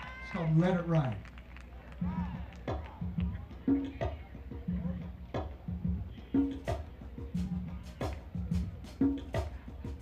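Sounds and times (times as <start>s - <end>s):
drum kit groove: 2.0s - 10.0s
live band playing: 2.0s - 10.0s.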